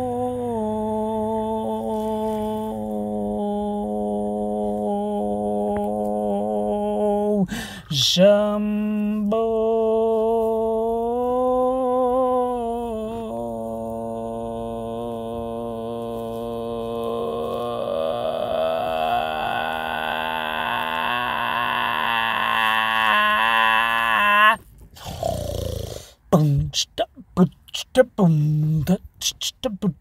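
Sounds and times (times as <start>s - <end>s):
person humming one long note: 0.0s - 24.6s.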